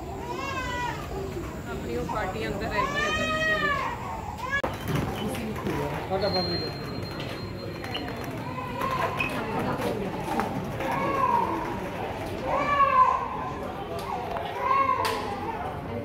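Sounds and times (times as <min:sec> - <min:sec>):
children calling out: 0:00.0 - 0:04.7, 0:08.1 - 0:16.0
crowd chatter: 0:00.0 - 0:16.0.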